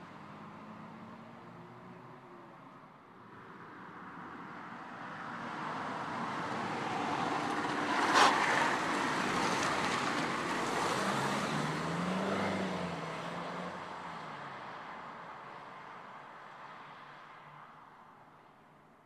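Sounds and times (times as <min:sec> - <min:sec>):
car driving past: 0:07.0 - 0:14.3.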